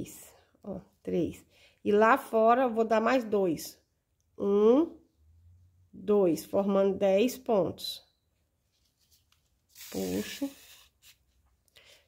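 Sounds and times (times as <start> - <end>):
handling of ribbon and needle: 8.6 - 11.6
thread rasping through ribbon: 8.9 - 11.4.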